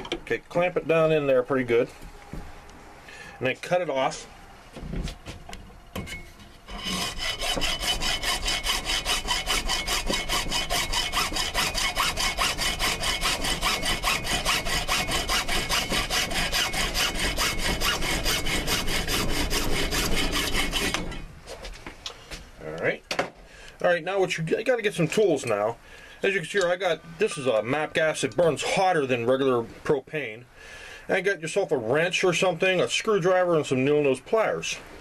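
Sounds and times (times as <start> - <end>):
hacksaw cutting plastic pipe: 6.0 - 21.2.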